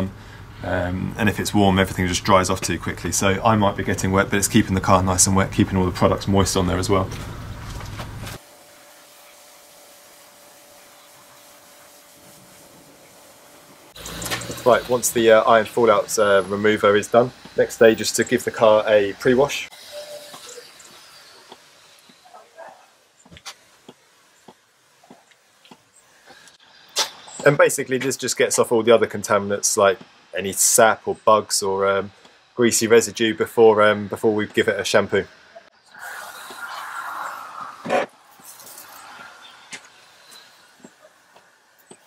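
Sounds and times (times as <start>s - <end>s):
pressure sprayer hissing: 0.1s - 30.8s, 35.8s - 42.0s.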